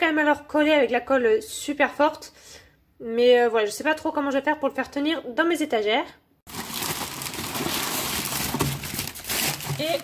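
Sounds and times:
packaging rustling and crinkling: 0:06.5 - 0:10.0.

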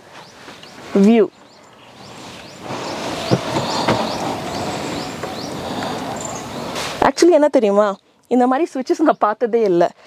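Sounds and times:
steady rushing wind noise: 0:00.0 - 0:07.2
bird chirping: 0:00.0 - 0:08.2
faint knocks: 0:03.2 - 0:05.4.

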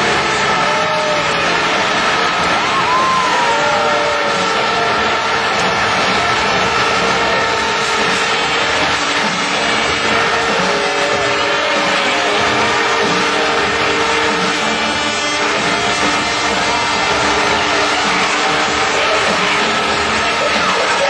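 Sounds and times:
motorcycle engine racing: 0:00.0 - 0:21.0
stadium crowd noise: 0:00.0 - 0:21.0.

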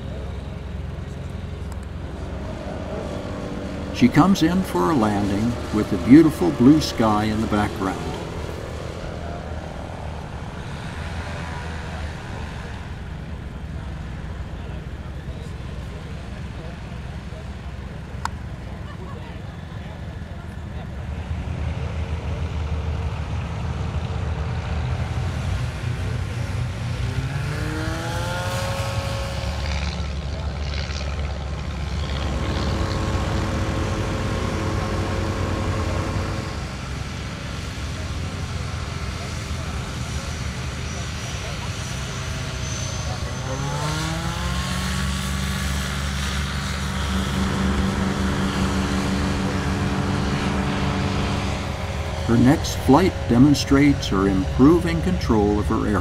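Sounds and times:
light aircraft engine and propeller: 0:00.0 - 0:56.0.

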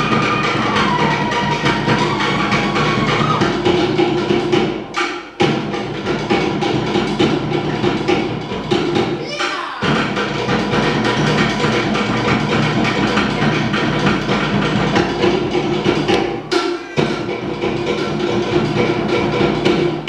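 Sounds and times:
fast slit-log drumming: 0:00.0 - 0:20.0.

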